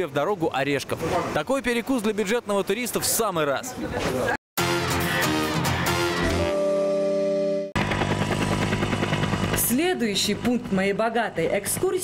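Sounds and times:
helicopter engine drone: 7.7s - 12.0s
helicopter rotor chop: 7.8s - 12.0s.

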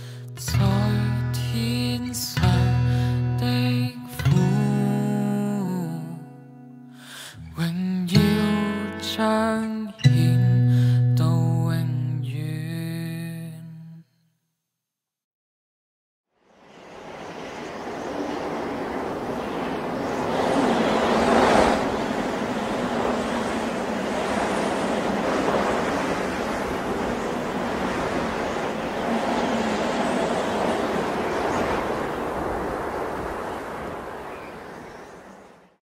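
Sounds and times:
rushing surf-like noise: 16.4s - 35.6s.

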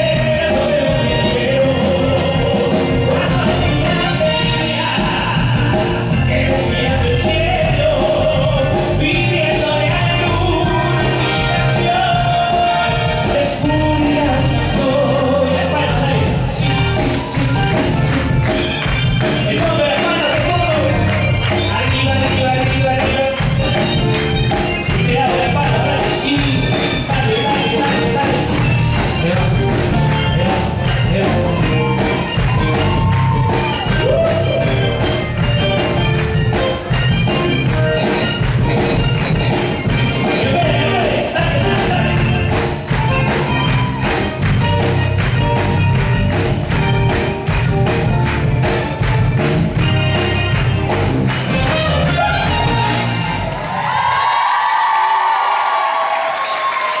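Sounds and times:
lead vocal singing: 0.0s - 23.8s, 40.3s - 42.8s
live band playing: 0.0s - 57.0s.

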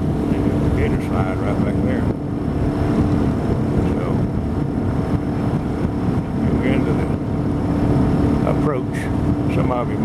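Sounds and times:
outboard motor running: 0.0s - 10.0s.

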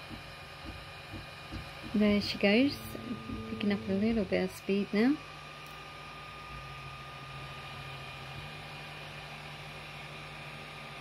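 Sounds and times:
cooling fans whirring: 0.0s - 11.0s
low motor hum: 0.0s - 11.0s.

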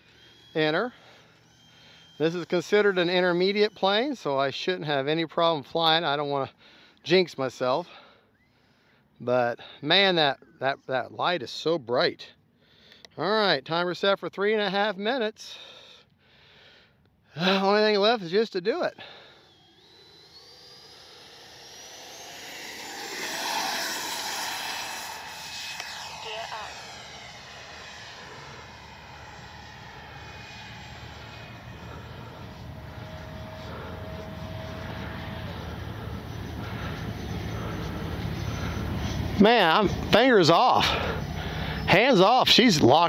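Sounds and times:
model jet fan whine: 0.0s - 10.6s, 17.4s - 43.0s.

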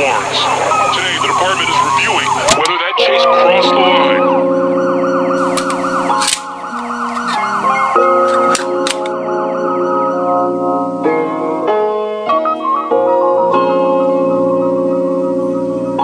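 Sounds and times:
rapid siren yelp: 0.0s - 11.7s
held synthesizer chords: 0.0s - 16.0s
sharp clicks: 5.4s - 7.5s, 8.2s - 9.2s.

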